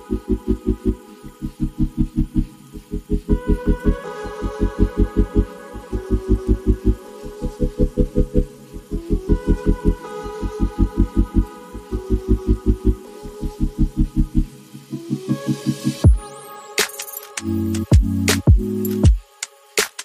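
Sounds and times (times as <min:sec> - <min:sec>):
soft bass beat: 0:00.0 - 0:14.5, 0:16.0 - 0:16.2, 0:17.4 - 0:19.2.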